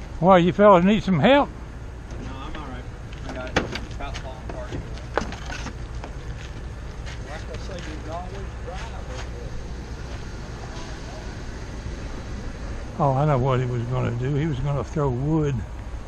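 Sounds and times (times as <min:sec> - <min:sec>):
distant men's voices: 0:00.0 - 0:15.9
vehicle engine idling: 0:00.0 - 0:16.0.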